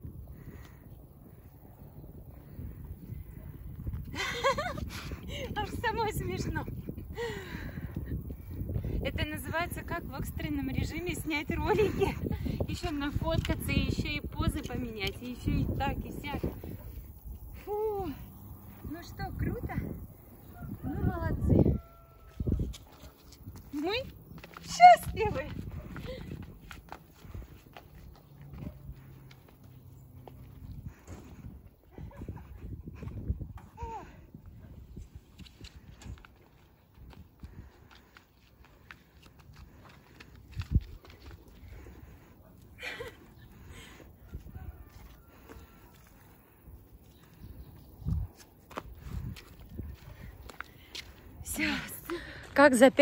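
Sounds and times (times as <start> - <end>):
woman laughing: 4.0 - 5.8, 11.5 - 12.6, 31.8 - 33.2, 42.7 - 43.8
footsteps on paving stones: 9.4 - 20.1, 21.8 - 53.0.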